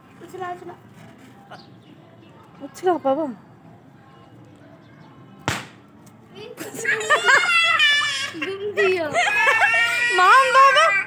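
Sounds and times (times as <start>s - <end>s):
firecracker crack: 5.4s - 6.0s
children shrieking: 6.8s - 11.0s.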